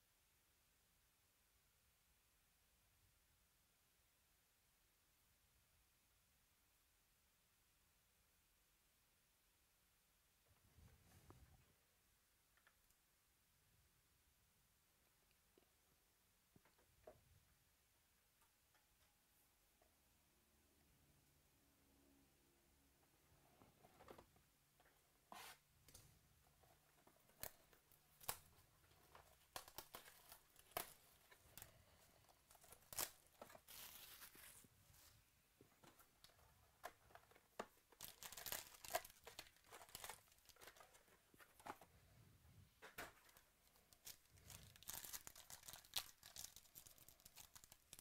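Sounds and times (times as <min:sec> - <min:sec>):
plastic wrapping crinkling and tearing: 0:27.3 - 0:34.6, 0:37.9 - 0:41.7, 0:43.0 - 0:48.0.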